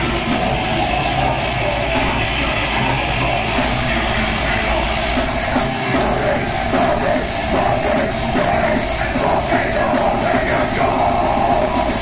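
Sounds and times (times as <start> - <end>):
distorted electric guitar: 0.0 - 12.0
metal band playing live: 0.0 - 12.0.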